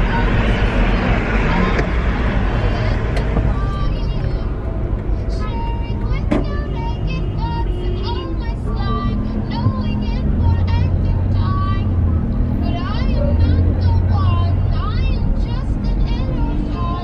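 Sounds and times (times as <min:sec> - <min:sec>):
car rumble from inside cabin: 0:00.0 - 0:17.0.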